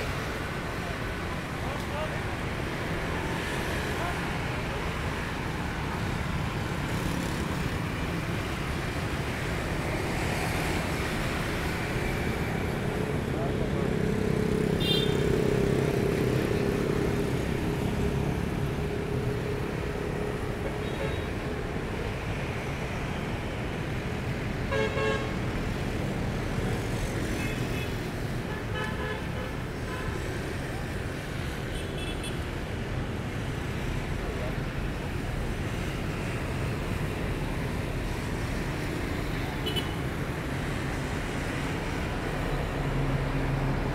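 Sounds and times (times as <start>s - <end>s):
motorbikes and cars passing: 0.0s - 43.9s.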